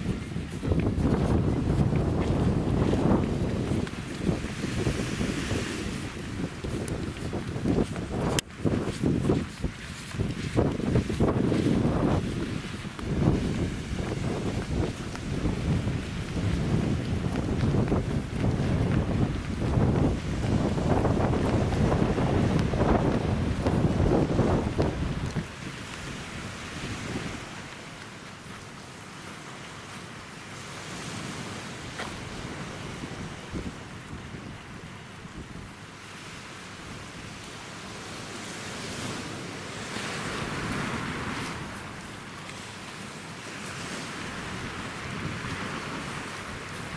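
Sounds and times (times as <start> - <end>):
gusty wind buffeting microphone: 0.0 - 28.0, 31.0 - 35.8, 43.7 - 46.9
surf: 0.0 - 46.9.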